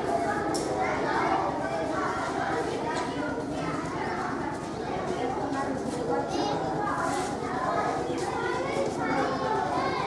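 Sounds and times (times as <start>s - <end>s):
children's voices babbling: 7.8s - 10.0s.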